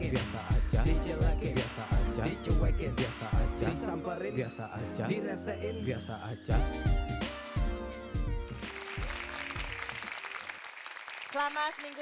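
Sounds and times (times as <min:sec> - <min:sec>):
song with bass and melody: 0:00.0 - 0:09.9
studio audience applauding: 0:08.4 - 0:12.0.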